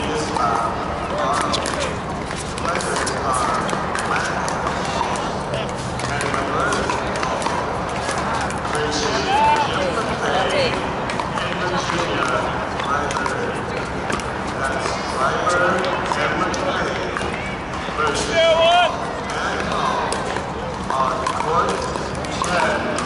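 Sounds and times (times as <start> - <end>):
chatter of many voices: 0.0 - 23.0.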